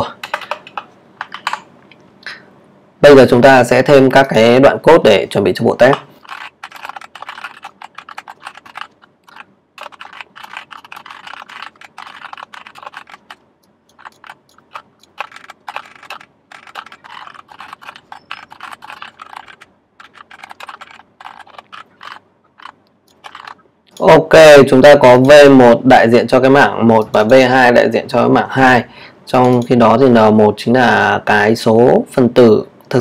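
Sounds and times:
typing on computer keyboard: 0.0s - 1.7s, 5.9s - 24.1s.

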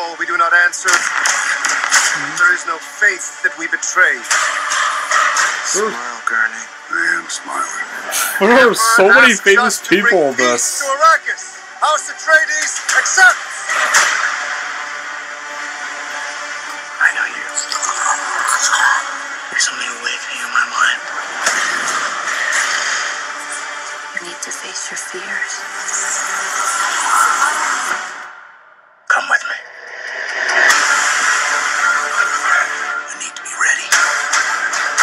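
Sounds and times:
loud engine-like rushing noise: 29.6s - 31.8s.

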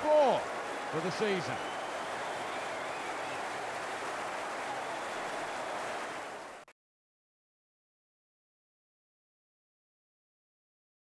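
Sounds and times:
stadium crowd cheering: 0.0s - 6.7s.

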